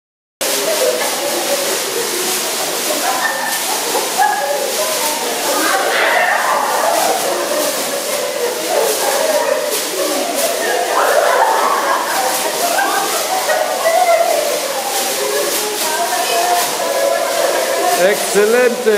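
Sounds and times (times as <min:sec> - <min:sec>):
people chattering and laughing: 0:00.4 - 0:18.9
plastic bags rustling: 0:00.4 - 0:18.9.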